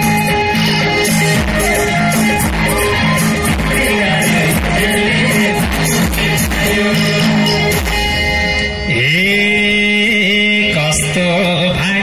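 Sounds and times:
singer holding long note: 0.0 - 11.4
live folk band: 0.0 - 12.0.

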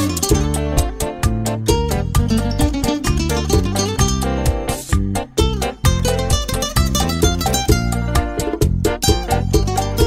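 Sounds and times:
bass and percussion: 0.0 - 10.0
plucked lead guitar: 0.0 - 10.0.

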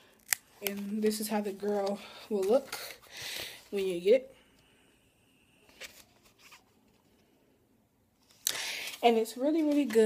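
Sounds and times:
packet rustling: 8.3 - 10.0.

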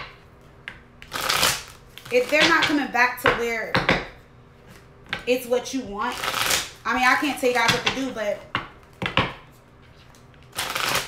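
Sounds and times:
cards riffle-shuffled: 9.9 - 11.0.

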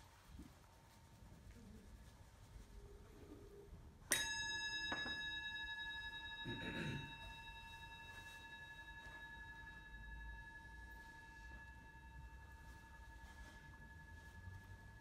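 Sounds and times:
metal bell ringing: 4.1 - 15.0.

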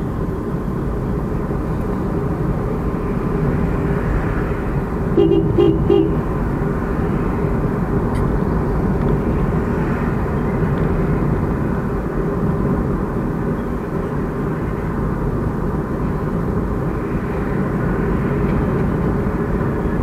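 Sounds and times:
road and engine rumble inside car: 0.0 - 20.0
vehicle horn toots: 5.1 - 6.3.

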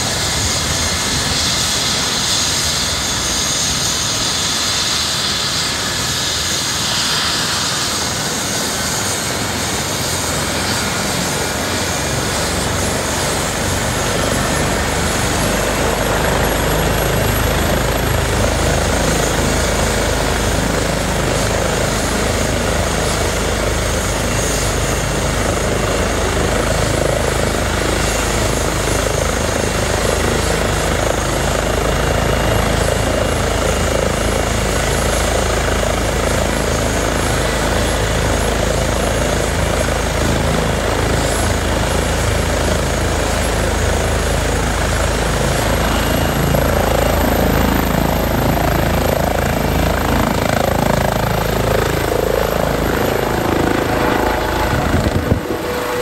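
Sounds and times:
helicopter turbine and rotor: 0.0 - 56.0.

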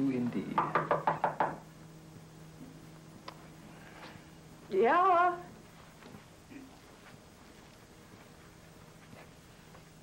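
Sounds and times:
knocks on a door: 0.6 - 1.6.

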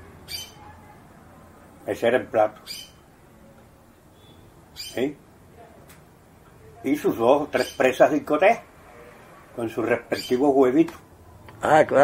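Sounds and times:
man speaking: 6.8 - 8.7, 9.6 - 11.0.

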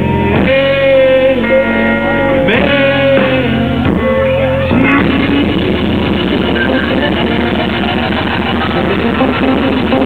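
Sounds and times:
electric guitar rapid notes: 0.0 - 10.0
rock band playing: 0.0 - 10.0.

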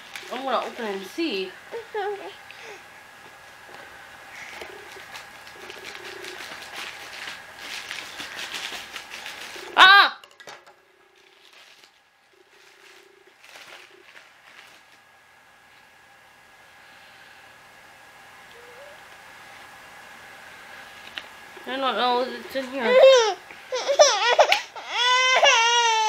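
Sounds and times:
plastic packaging crinkling: 0.0 - 1.0, 4.4 - 9.9, 11.0 - 15.1
packaging being torn open: 12.6 - 15.0.

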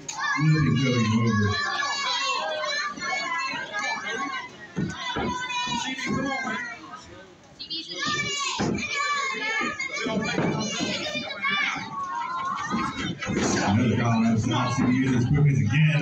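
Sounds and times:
children talking and calling out: 0.0 - 16.0.

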